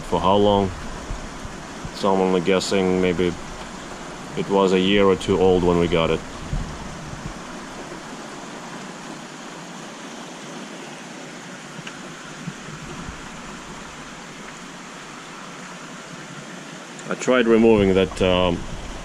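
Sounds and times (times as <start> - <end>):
aquarium water rushing: 0.0 - 19.0.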